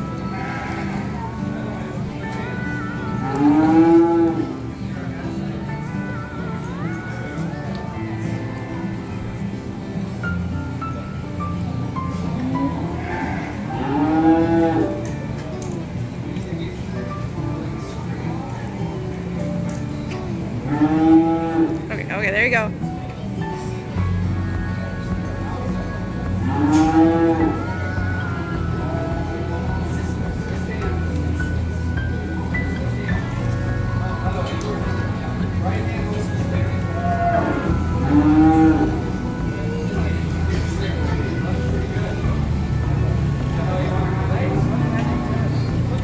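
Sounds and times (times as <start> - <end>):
cattle mooing: 0.2 - 1.2, 3.2 - 4.6, 12.7 - 15.0, 20.6 - 21.9, 26.5 - 28.5, 36.8 - 39.2.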